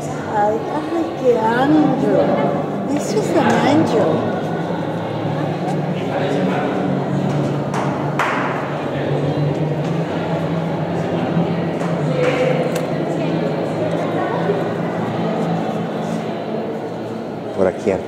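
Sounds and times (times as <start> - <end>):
murmur of voices: 0.0 - 18.0.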